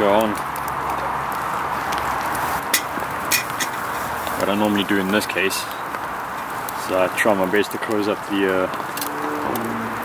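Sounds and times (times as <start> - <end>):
wood stove hissing and crackling: 0.0 - 9.1.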